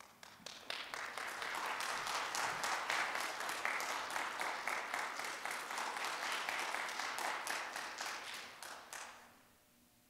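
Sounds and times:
audience applause: 0.0 - 9.2.

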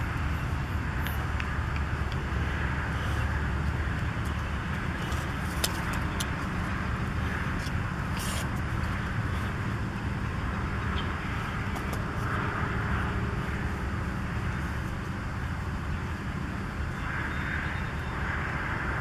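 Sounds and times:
low outdoor background rumble: 0.0 - 19.0.

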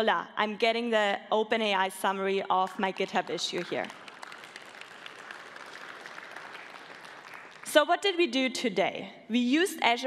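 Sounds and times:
audience applauding: 3.6 - 7.8.

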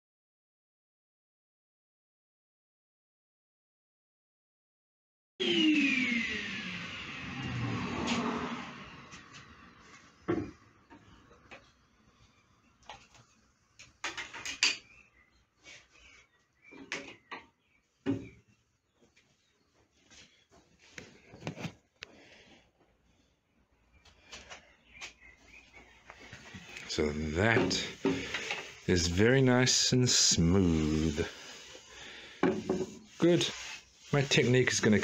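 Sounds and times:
planer motor spinning down: 5.4 - 10.2
knocks and clunks of wood: 10.3 - 11.0, 16.7 - 18.4, 32.4 - 33.0.

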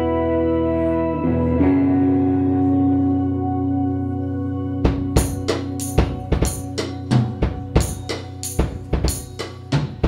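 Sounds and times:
electric guitar chords: 0.0 - 10.0.

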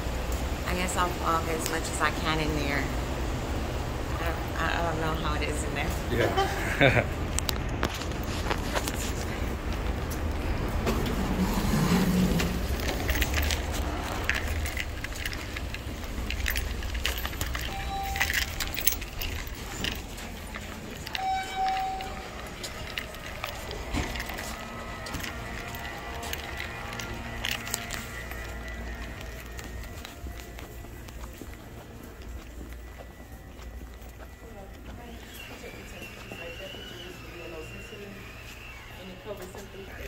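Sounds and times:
footsteps: 5.4 - 40.0
faint background music: 16.4 - 40.0
short beeps: 17.7 - 18.7, 21.1 - 22.4.

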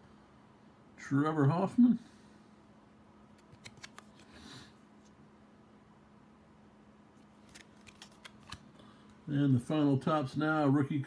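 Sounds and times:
card swishing over card: 3.4 - 4.3, 7.2 - 8.6.

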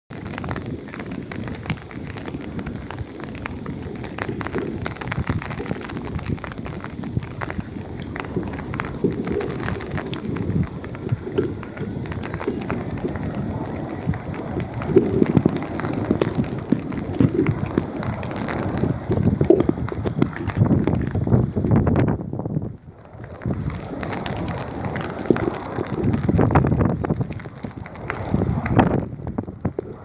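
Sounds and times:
crackling wind noise on microphone: 0.1 - 30.0
distant jet airliner rumbling: 2.4 - 21.6.

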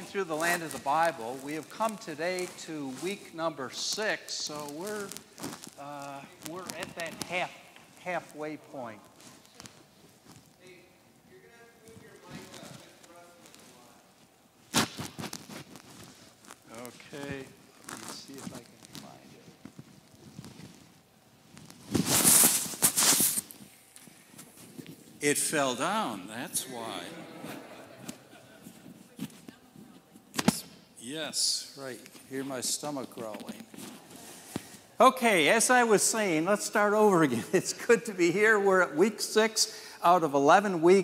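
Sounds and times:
microphone rubbing on clothing: 0.0 - 30.9.

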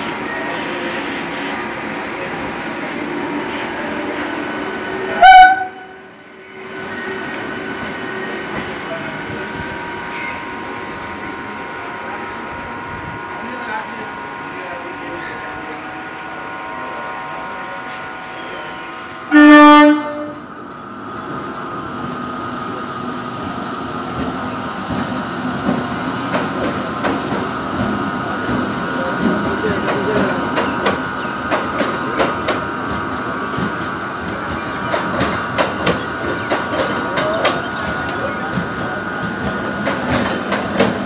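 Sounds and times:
electric train humming: 0.0 - 41.0
train horn blast: 5.0 - 6.1, 19.3 - 20.5.

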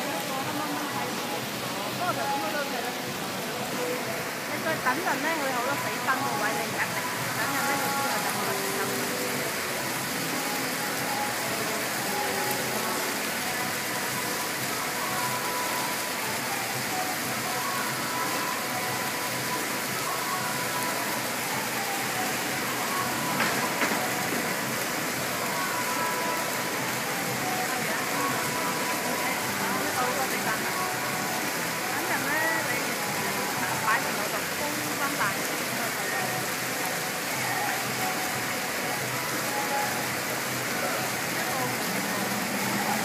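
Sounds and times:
outdoor background hiss: 0.0 - 43.0.

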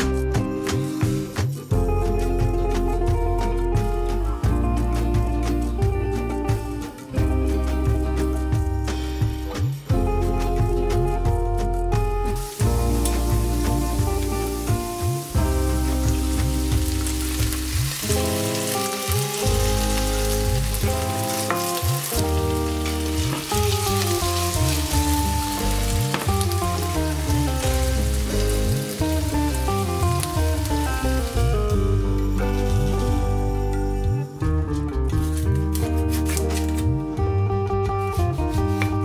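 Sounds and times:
background music with bass: 0.0 - 39.0
potatoes sizzling in hot oil: 12.4 - 33.6.

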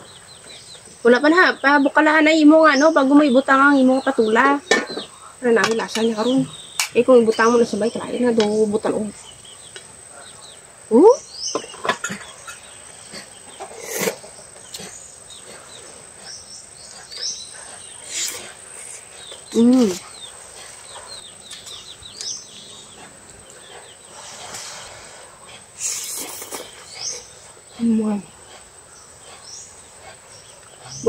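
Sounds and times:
crickets droning: 0.0 - 31.0
insect buzz: 0.0 - 31.0
small birds chirping: 0.0 - 31.0.

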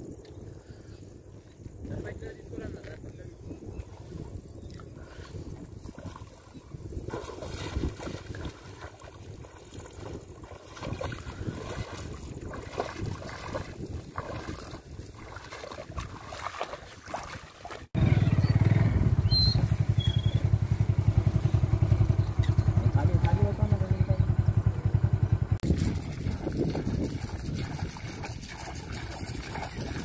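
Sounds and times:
man wading in water: 3.8 - 18.0, 25.6 - 30.0.

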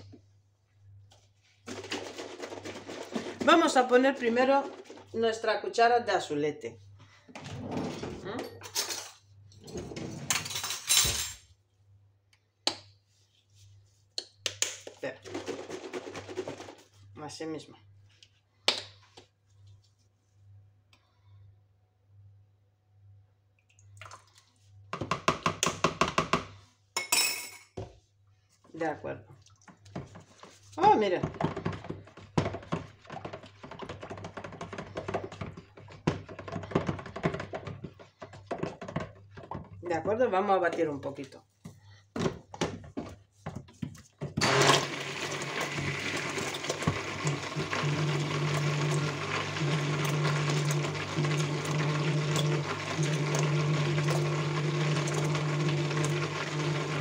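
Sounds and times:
spatula stirring batter in bucket: 28.0 - 44.4.

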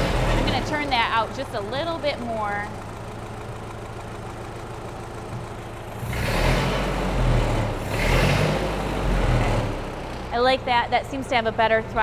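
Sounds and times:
tractor engine idling and revving: 0.0 - 12.0.

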